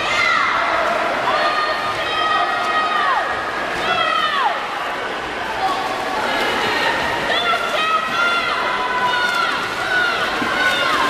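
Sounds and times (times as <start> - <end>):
crowd noise: 0.0 - 11.0
water splashing: 0.0 - 11.0.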